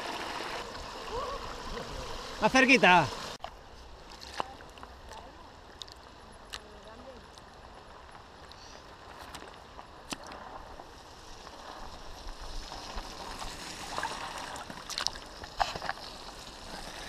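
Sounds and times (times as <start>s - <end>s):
stream water running: 0.0s - 17.0s
bike tyres splashing through water: 9.1s - 17.0s.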